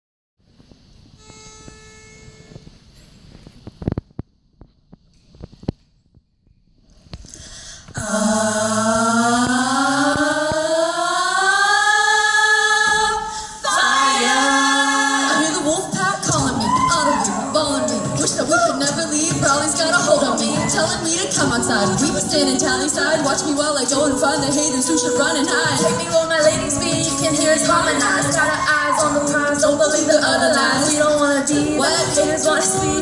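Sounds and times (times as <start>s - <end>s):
faint steady note: 1.0s - 3.5s
female a cappella group singing: 8.0s - 33.0s.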